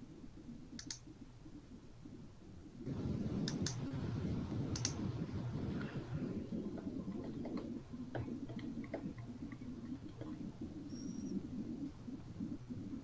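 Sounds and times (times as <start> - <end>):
low background hum: 0.0 - 13.0.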